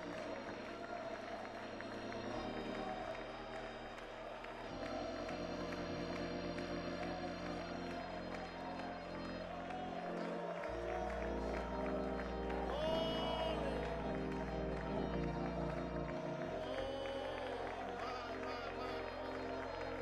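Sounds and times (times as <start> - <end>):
faint congregation voices: 0.0 - 20.0
slow worship music: 0.0 - 20.0.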